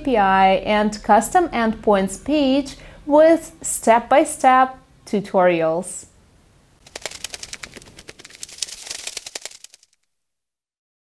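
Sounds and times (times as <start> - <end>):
sharp crackling ticks: 6.8 - 10.0.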